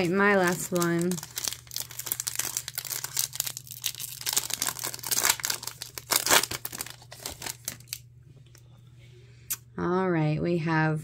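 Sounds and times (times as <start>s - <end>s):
foil wrapper tearing and crinkling: 0.0s - 8.0s.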